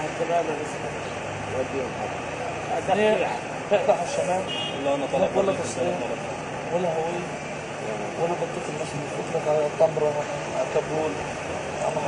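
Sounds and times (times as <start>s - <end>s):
men talking: 0.0s - 12.0s.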